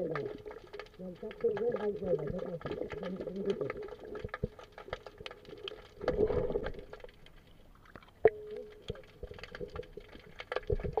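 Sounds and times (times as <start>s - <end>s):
underwater clicks and crackles: 0.0s - 11.0s
underwater rush of noise: 1.8s - 8.1s.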